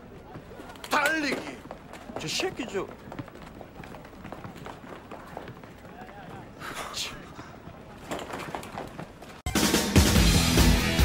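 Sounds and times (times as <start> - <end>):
faint voices: 0.0 - 9.2
running footsteps: 0.0 - 9.5.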